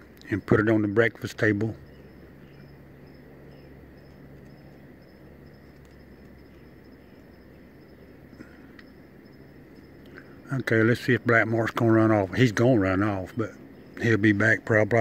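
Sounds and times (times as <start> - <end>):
crickets chirping: 0.0 - 15.0
low steady hum: 0.0 - 15.0.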